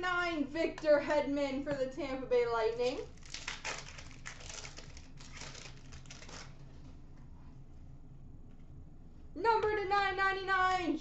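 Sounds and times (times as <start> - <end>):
pack wrapper crinkling: 3.0 - 6.7.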